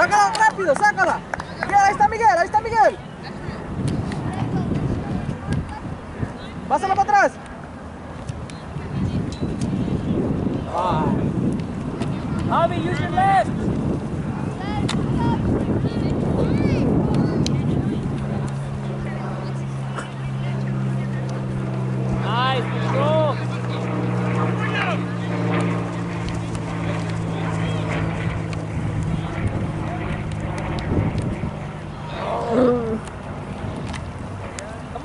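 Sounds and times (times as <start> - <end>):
low motor hum: 0.0 - 35.0
wind rumbling on microphone: 0.0 - 35.0
distant shouting voices: 17.8 - 30.6, 31.5 - 35.0.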